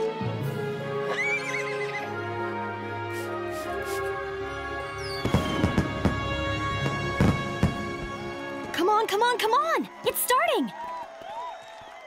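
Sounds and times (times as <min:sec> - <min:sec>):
background music: 0:00.0 - 0:10.9
cartoon unicorn whinnying: 0:01.1 - 0:02.2.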